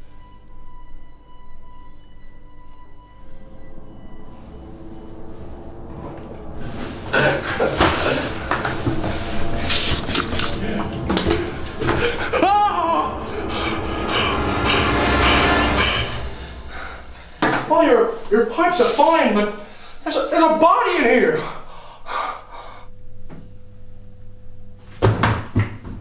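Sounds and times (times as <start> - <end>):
high-pitched ringing tone: 0.0 - 9.9
swooping sound: 3.3 - 17.8
clattering and noise: 3.4 - 19.2.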